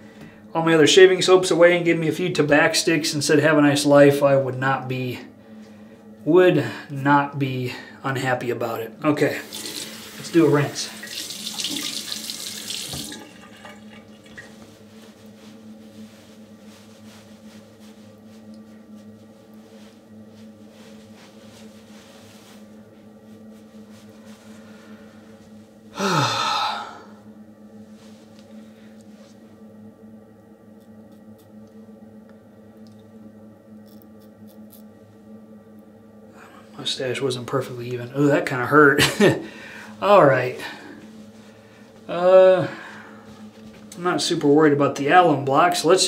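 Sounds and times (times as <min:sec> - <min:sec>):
low steady hum: 0:00.0 - 0:46.0
tap water running into sink: 0:09.4 - 0:14.5.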